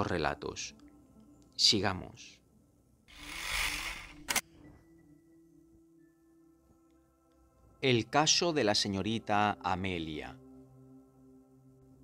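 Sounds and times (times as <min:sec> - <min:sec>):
camera shutter click: 0:03.3 - 0:04.4.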